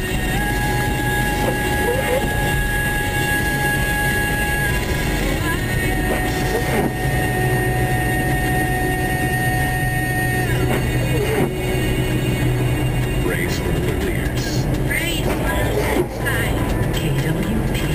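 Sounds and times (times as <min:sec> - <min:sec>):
car cabin road noise: 0:00.0 - 0:17.9
music with singing voice: 0:00.0 - 0:17.9.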